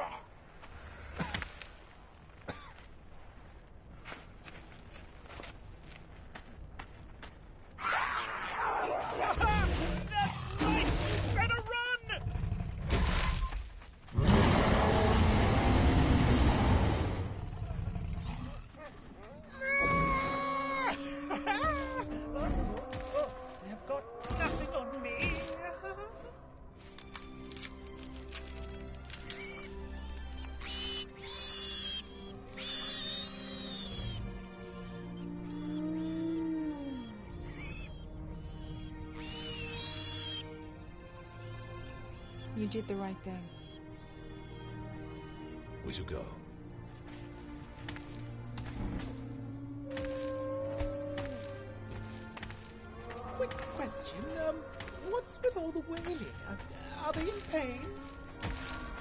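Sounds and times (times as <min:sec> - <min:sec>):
soft film score music: 0:00.0 - 0:59.0
baby dinosaur squeaky call: 0:29.2 - 0:40.4, 0:41.4 - 0:45.4.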